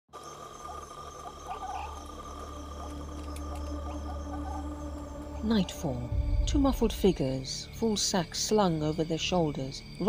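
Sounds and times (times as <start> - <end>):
insects trilling: 0.1 - 10.0
frog-like chirps: 0.3 - 5.1
low steady hum: 0.6 - 10.0.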